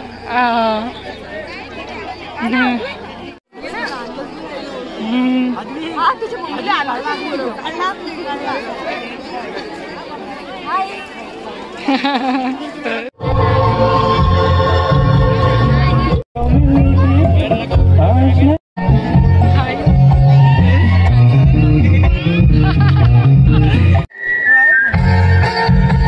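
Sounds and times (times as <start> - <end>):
people chatting: 0.0 - 13.1, 15.6 - 23.9.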